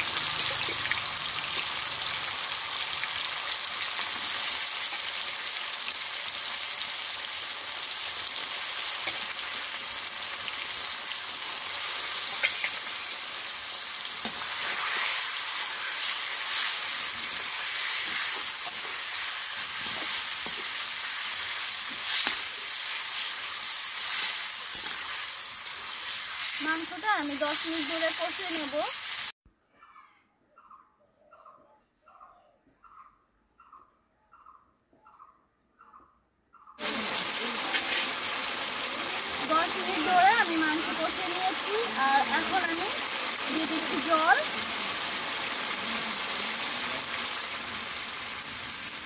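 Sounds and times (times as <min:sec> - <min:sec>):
chicken sizzling in hot oil: 0:00.0 - 0:29.4, 0:36.8 - 0:49.0.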